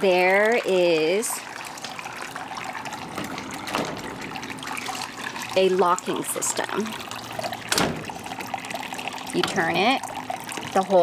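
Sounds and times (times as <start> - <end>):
door latch click: 7.7 - 8.1.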